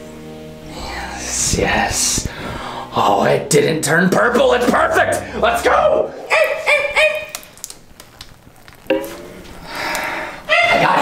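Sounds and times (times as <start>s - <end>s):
man yipping like a dog: 6.2s - 7.4s, 10.5s - 11.0s.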